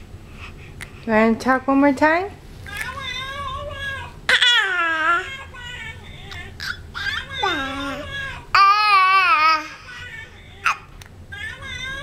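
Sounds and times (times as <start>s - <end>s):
baby doll crying: 3.8s - 12.0s.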